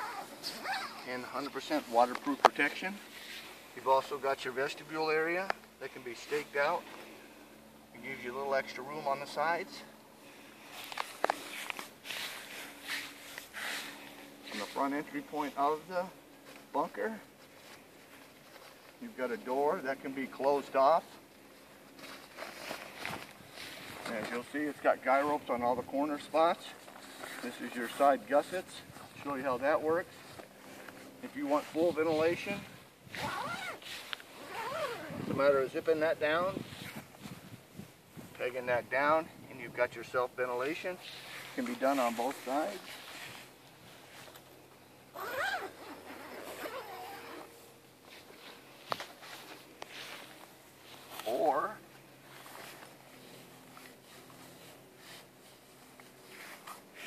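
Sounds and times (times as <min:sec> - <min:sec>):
zipper being run: 0:00.0 - 0:01.1, 0:33.1 - 0:35.4, 0:45.1 - 0:47.8
canvas tent flap rustling: 0:00.0 - 0:06.9, 0:10.7 - 0:25.4, 0:26.2 - 0:37.6, 0:41.0 - 0:57.0.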